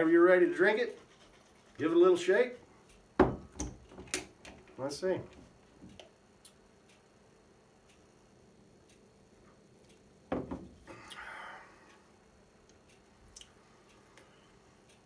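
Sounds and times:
faint ticks: 5.9 - 7.2, 8.8 - 10.1
glass bottle knocking on bar top: 10.3 - 10.7.

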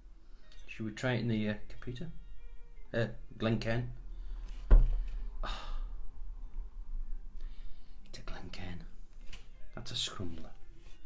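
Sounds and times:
man breathing out: 4.1 - 6.0.

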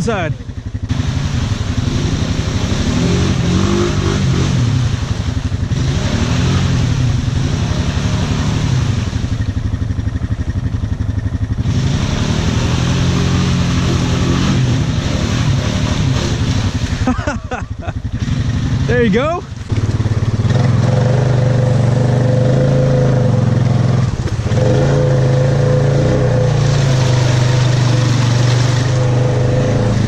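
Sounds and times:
atv engine revving: 0.0 - 30.0.

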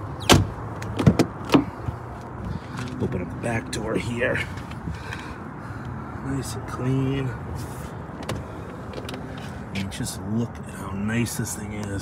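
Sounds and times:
car door shutting: 0.2 - 2.0.

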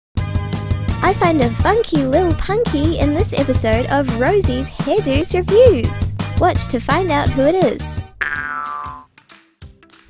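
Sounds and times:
cartoon falling boing glide: 8.2 - 9.1.

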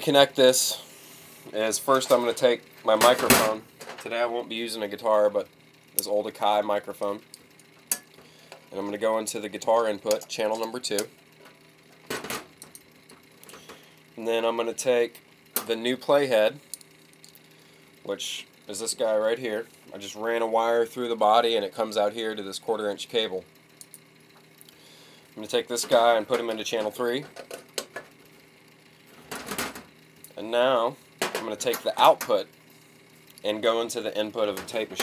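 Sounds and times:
faint steady hum: 0.0 - 35.0.

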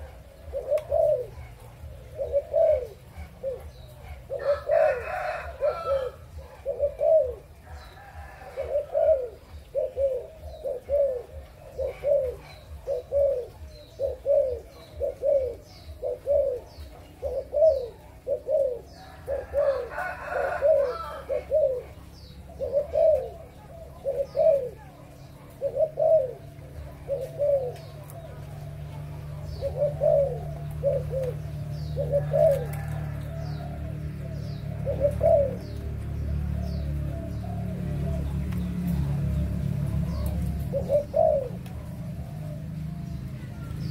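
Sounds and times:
dove cooing: 0.0 - 43.9.

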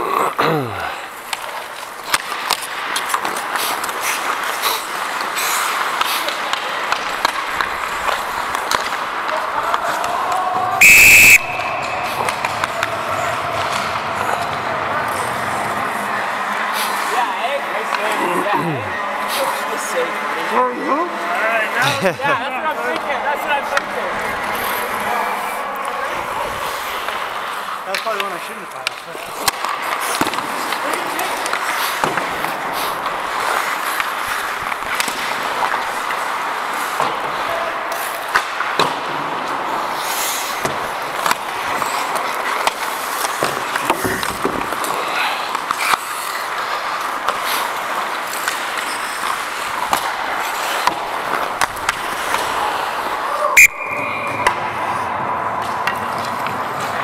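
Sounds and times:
hockey sticks and puck clacking: 0.9 - 18.6, 22.7 - 57.0
skate blades scraping ice: 1.0 - 10.8, 11.5 - 18.6, 22.8 - 57.0.

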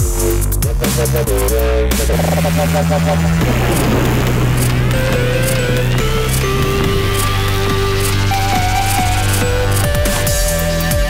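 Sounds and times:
electronic music: 0.0 - 11.0
held bass notes: 0.6 - 11.0
synth melody: 2.4 - 10.5.

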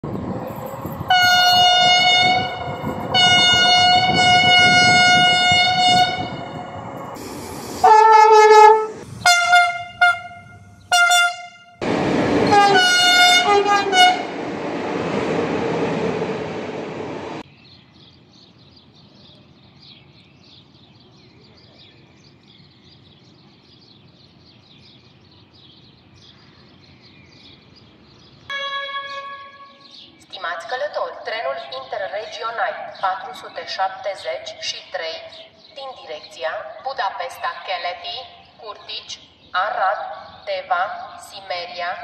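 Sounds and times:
rolling train noise: 0.0 - 17.5, 27.8 - 30.2
train horn blasts: 1.1 - 6.6, 7.8 - 11.8, 12.4 - 14.3, 28.5 - 30.0
faint birdsong: 17.0 - 42.0.

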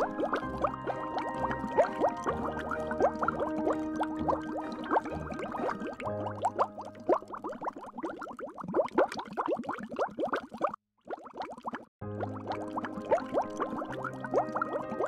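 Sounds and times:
bubbling water blips: 0.0 - 15.0.

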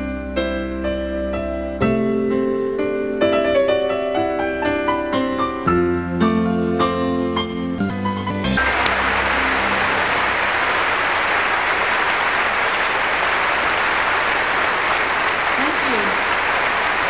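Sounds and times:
large audience applauding: 8.6 - 17.0.

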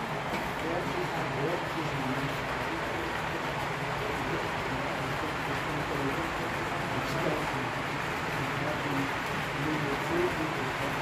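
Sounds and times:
model freight cars rumbling on track: 0.0 - 11.0.

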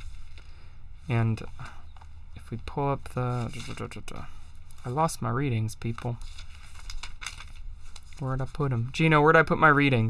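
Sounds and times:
paper rustling and crinkling: 3.0 - 9.2.

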